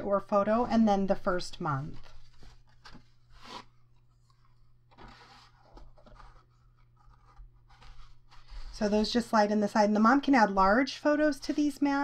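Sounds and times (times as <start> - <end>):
cardstock rustling and brushing: 1.8 - 9.2.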